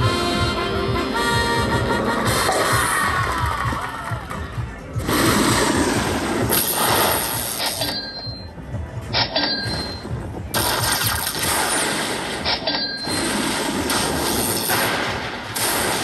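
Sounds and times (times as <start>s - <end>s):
slot machine win music: 5.0s - 8.5s, 9.1s - 13.6s.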